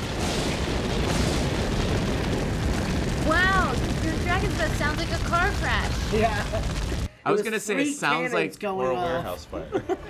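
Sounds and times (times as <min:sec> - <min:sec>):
harsh rushing blast of noise: 0:00.0 - 0:07.1.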